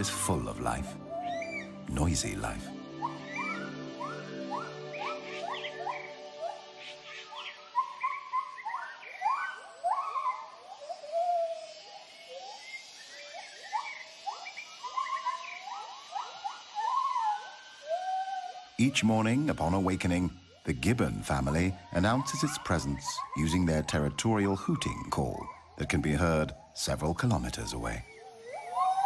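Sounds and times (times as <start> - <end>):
low held music tone: 0.0 - 11.6
gibbons hooting: 0.0 - 29.0.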